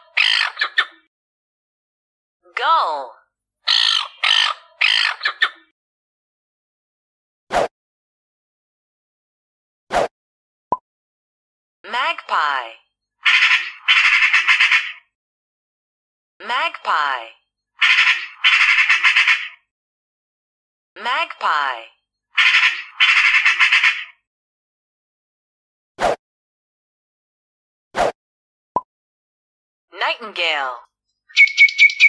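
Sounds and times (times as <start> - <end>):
magpie harsh chattering call: 0.0 - 0.8, 3.7 - 5.6, 13.2 - 15.0, 17.8 - 19.6, 22.4 - 24.2, 31.3 - 32.0
gull calling: 3.7 - 5.7, 31.3 - 32.0.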